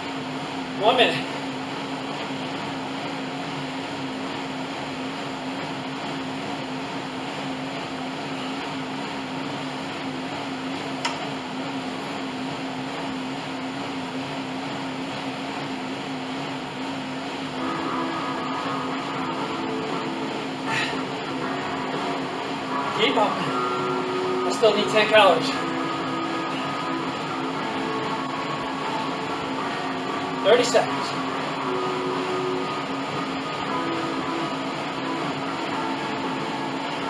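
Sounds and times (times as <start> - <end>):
fan whirring: 0.0 - 37.0.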